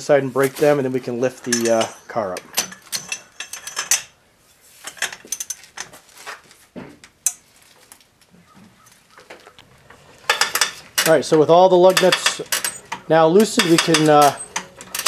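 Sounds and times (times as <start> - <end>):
metal tools clinking on lug nuts: 0.4 - 4.2, 4.9 - 5.9, 9.6 - 15.0.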